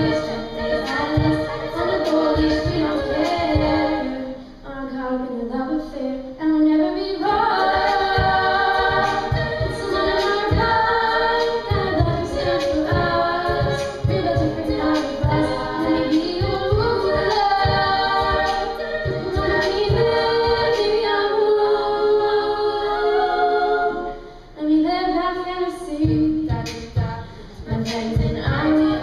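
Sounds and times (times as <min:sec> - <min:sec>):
women singing in close harmony: 0:00.0 - 0:29.0
low regular beat: 0:07.7 - 0:20.9.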